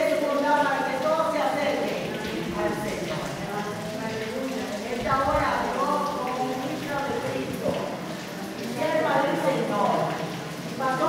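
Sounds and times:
echoing indistinct speech: 0.0s - 11.0s.

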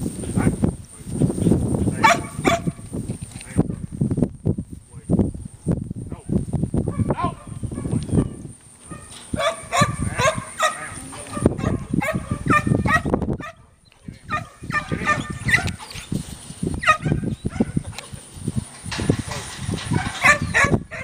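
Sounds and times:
dog barking: 2.0s - 2.8s, 6.9s - 16.0s, 16.8s - 18.1s, 19.3s - 21.0s.

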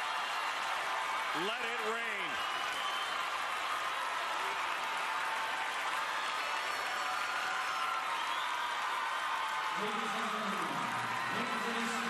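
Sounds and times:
crowd cheering: 0.0s - 12.0s
crowd clapping: 0.0s - 12.0s.

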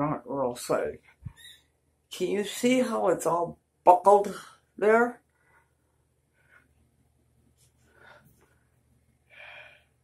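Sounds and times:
person breathing: 7.7s - 10.0s.

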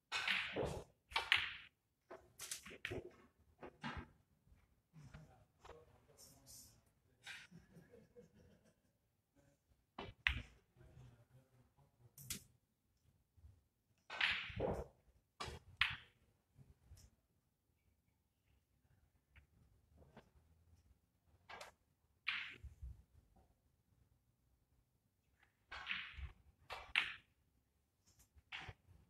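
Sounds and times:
snooker balls clicking together: 0.1s - 3.2s, 21.4s - 22.7s, 25.4s - 27.4s.

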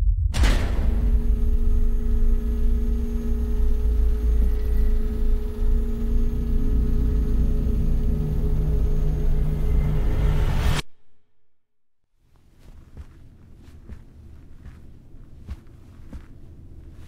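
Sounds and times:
deep steady rumble: 0.0s - 10.8s
low sustained tone: 0.0s - 10.8s
sustained held tones: 0.9s - 10.6s.

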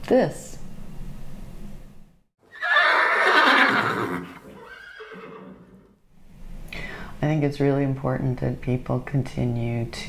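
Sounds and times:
horse neighing: 2.5s - 6.0s.

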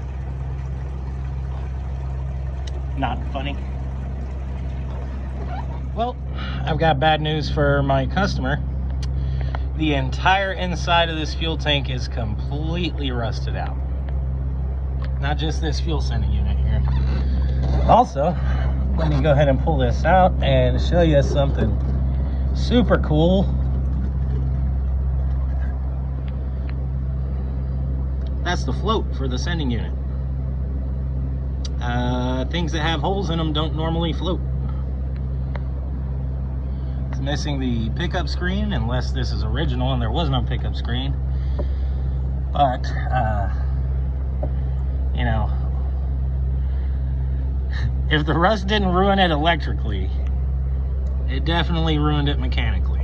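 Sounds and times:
fuel splashing into plastic bucket: 0.0s - 6.7s
steady low hum: 0.0s - 53.0s.

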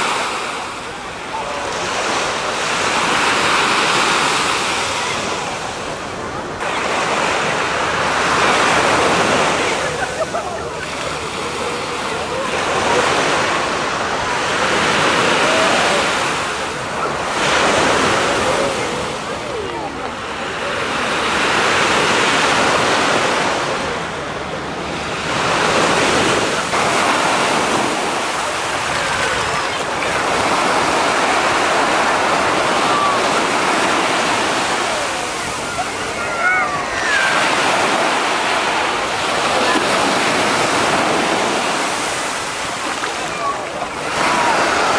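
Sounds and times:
small waves breaking on sand: 0.0s - 44.9s
voices of bathers: 0.0s - 44.9s.

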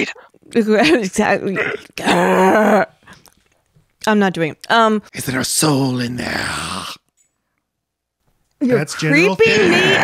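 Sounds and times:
person growling like an ape: 1.6s - 3.0s, 9.4s - 10.0s.

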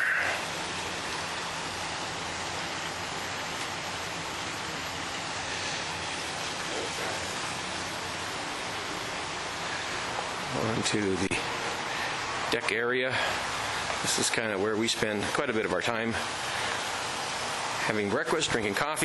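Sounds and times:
steady outdoor hiss: 0.0s - 19.0s.

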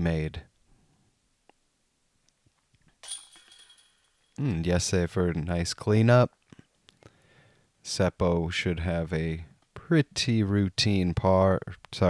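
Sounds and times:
disc hitting metal chains: 3.0s - 4.4s.

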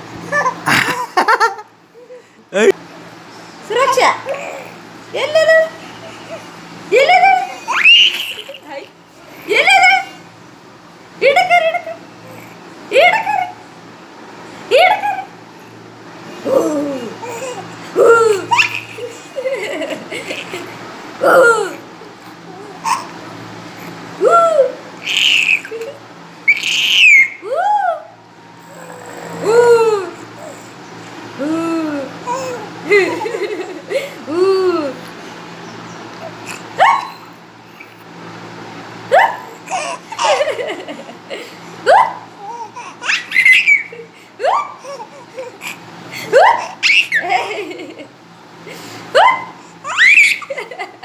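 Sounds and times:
baby laughing and squealing: 7.0s - 8.8s, 16.5s - 21.8s, 22.5s - 23.2s, 24.4s - 30.7s, 36.2s - 37.9s, 39.1s - 40.8s, 41.9s - 48.1s, 49.2s - 51.0s
baby cooing and squealing: 26.5s - 30.6s.

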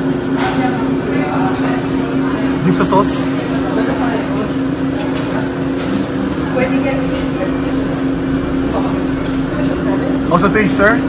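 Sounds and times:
murmur of chatter: 0.0s - 11.0s.

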